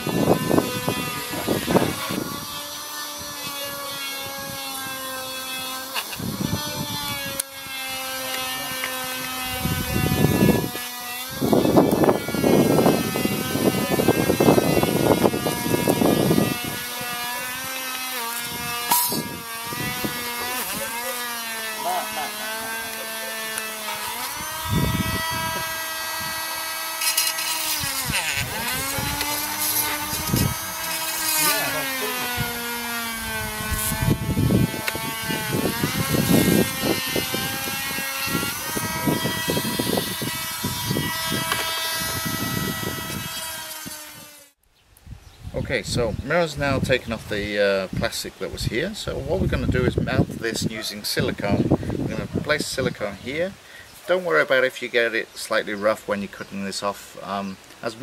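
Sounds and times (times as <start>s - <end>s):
rotary tool grinding plastic: 0.0s - 44.6s
rotary tool whining: 0.0s - 44.6s.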